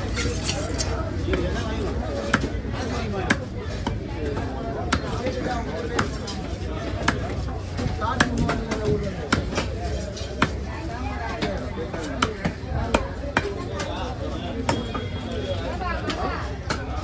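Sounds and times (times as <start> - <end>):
voices chattering: 0.0 - 17.0
knife chopping on wooden block: 4.8 - 6.4, 8.1 - 9.7, 10.3 - 10.6.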